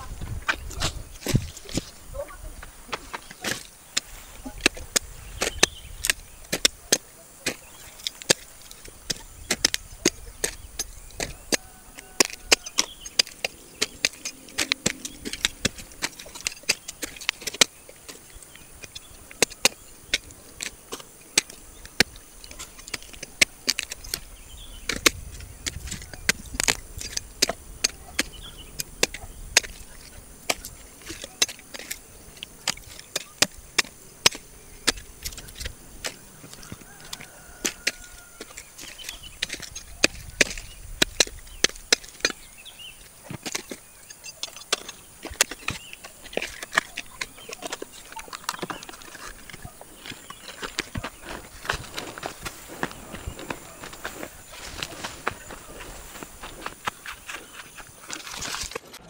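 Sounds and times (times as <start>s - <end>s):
machete chopping roots: 2.9s - 59.0s.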